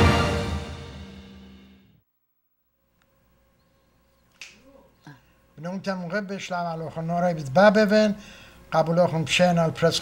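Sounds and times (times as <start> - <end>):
man speaking: 5.6 - 10.0.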